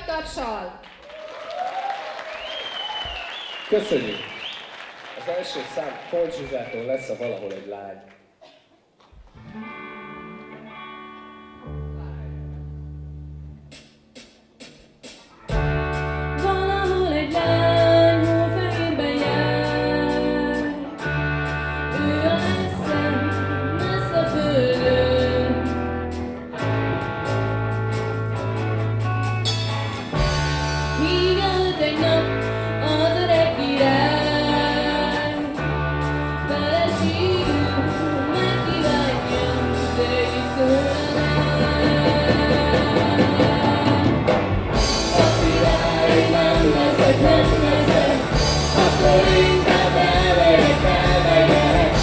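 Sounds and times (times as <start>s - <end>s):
soft electric guitar: 9.2s - 13.6s, 15.4s - 52.0s
bass guitar notes: 9.4s - 14.2s, 15.4s - 52.0s
drum kit: 13.6s - 20.8s, 21.5s - 52.0s
woman singing lead: 16.2s - 21.1s, 21.9s - 26.0s, 30.9s - 52.0s.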